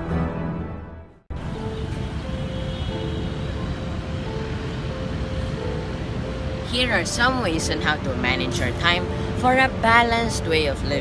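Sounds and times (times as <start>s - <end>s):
faint music of held notes: 1.3s - 11.0s
low rumble of traffic: 1.3s - 11.0s.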